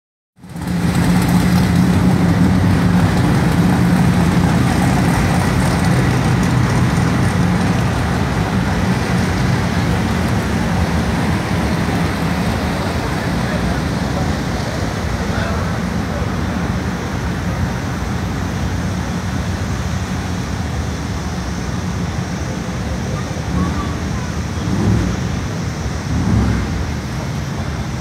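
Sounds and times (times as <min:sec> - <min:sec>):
motor vehicle humming: 0:00.4 - 0:28.0.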